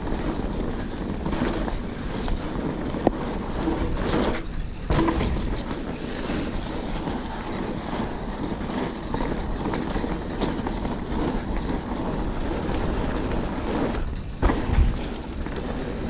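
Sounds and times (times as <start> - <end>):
bike clicks and rattles: 0.0 - 16.0
bike tyres rumbling on dirt: 0.0 - 16.0
wind buffeting microphone: 0.0 - 16.0.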